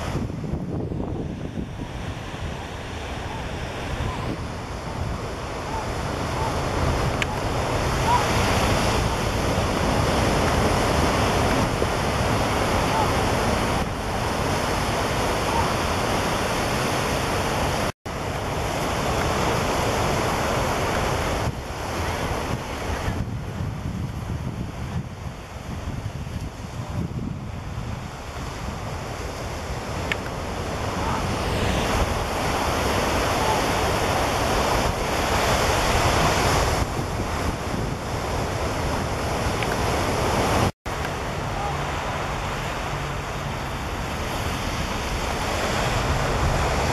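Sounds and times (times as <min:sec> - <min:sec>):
ocean surf breaking: 0:00.0 - 0:46.9
wind on microphone: 0:00.0 - 0:46.9.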